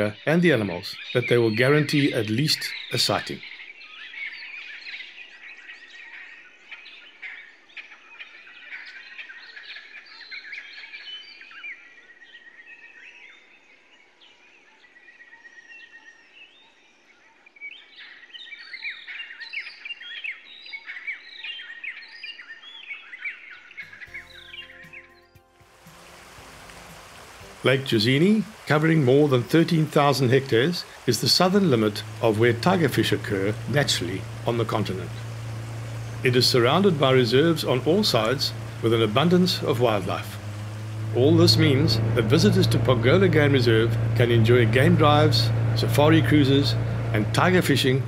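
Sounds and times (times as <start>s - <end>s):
birds chirping and whistling: 0.5s - 13.4s, 17.7s - 25.3s, 26.0s - 48.0s
steady hiss: 25.7s - 47.8s.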